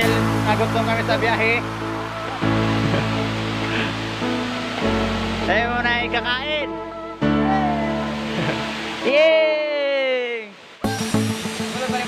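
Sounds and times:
background music with low notes: 0:00.0 - 0:09.1, 0:10.8 - 0:12.0
shallow river rushing: 0:00.0 - 0:12.0.

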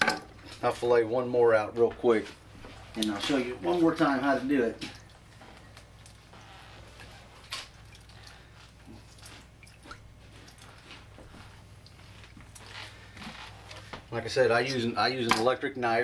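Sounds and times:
soft squishing: 0:01.6 - 0:15.0.

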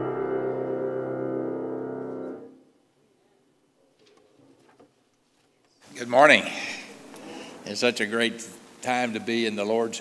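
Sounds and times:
held piano chord: 0:00.0 - 0:02.6
man's voice: 0:05.9 - 0:07.0, 0:07.6 - 0:10.0.

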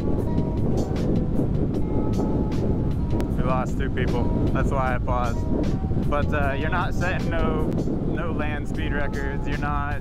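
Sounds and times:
road noise: 0:00.0 - 0:10.0
wind rumble: 0:00.0 - 0:10.0.

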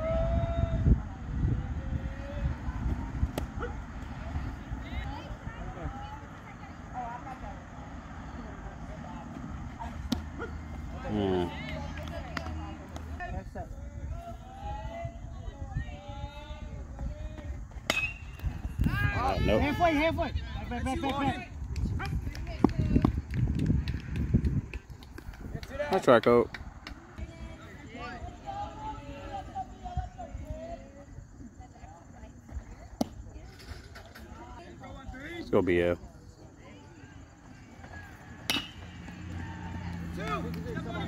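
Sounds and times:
distant voices and calls: 0:00.0 - 0:21.6, 0:24.9 - 0:41.0.

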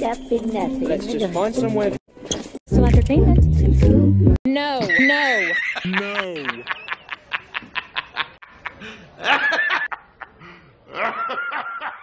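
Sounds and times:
man laughing heartily: 0:05.2 - 0:12.0.

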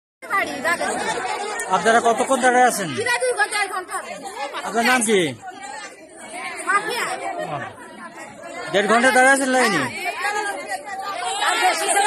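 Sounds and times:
people talking over one another: 0:00.2 - 0:12.0.

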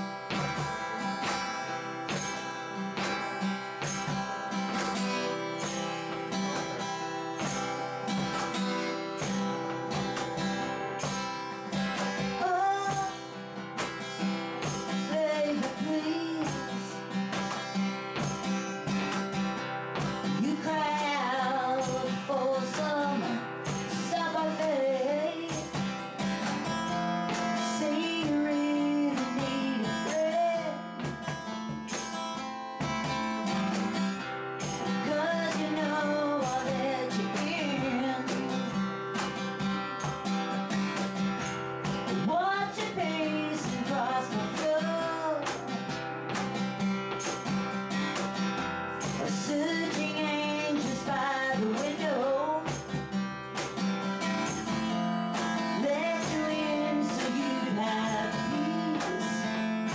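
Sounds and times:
strummed acoustic guitar: 0:00.0 - 0:59.9
woman singing country song: 0:00.0 - 0:59.9.

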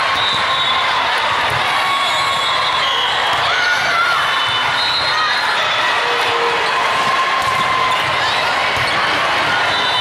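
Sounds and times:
chatter of players and spectators: 0:00.0 - 0:10.0.

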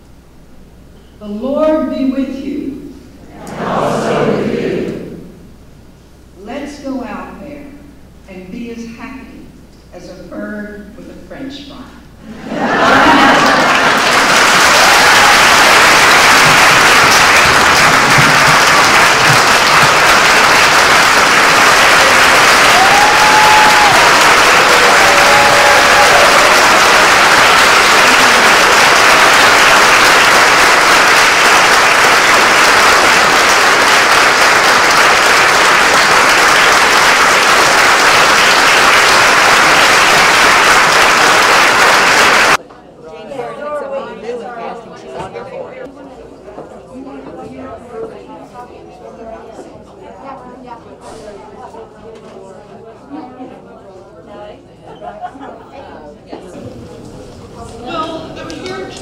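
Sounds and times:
audience applauding: 0:12.7 - 0:42.6.

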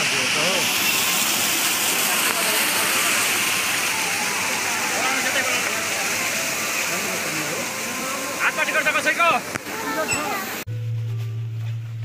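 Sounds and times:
fountain water spilling: 0:00.0 - 0:10.6
people's voices: 0:01.8 - 0:10.7.

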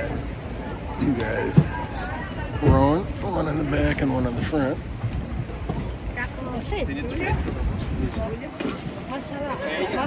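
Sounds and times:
faint voices talking: 0:00.0 - 0:10.0
wind rumbling on microphone: 0:00.0 - 0:10.0.

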